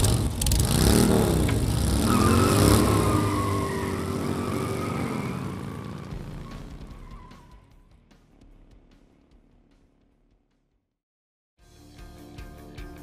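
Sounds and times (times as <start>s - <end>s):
motorcycle engines revving: 0.0s - 7.6s.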